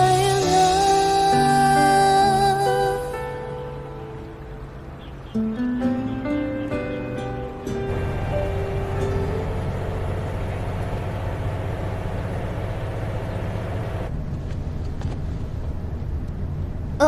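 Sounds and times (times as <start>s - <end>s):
background music: 0.0s - 11.2s
vehicle rumble from inside: 7.8s - 17.0s.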